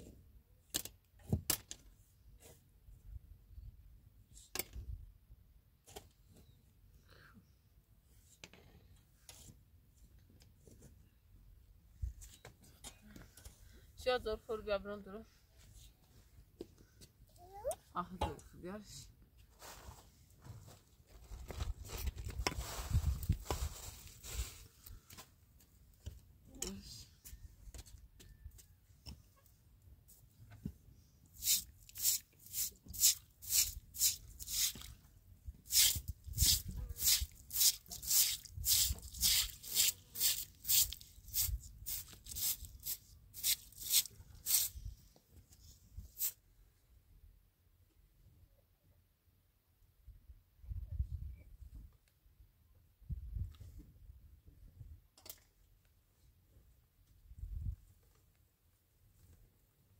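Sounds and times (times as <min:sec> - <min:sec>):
rustling noise: 0:19.4 - 0:26.0
broom scrubbing wet stone: 0:31.4 - 0:35.0, 0:35.6 - 0:44.8.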